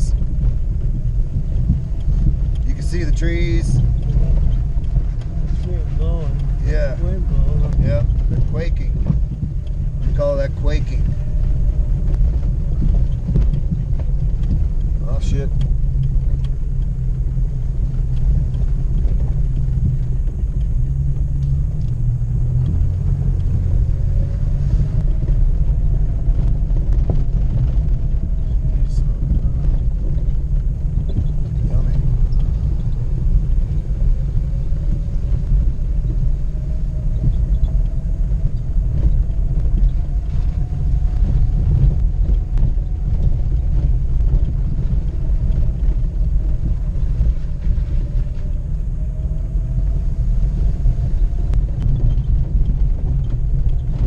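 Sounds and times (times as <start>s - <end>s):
engine and tyres rumbling: 0.0s - 54.0s
faint engine whine: 0.0s - 54.0s
knocks and rattles: 0.0s - 54.0s.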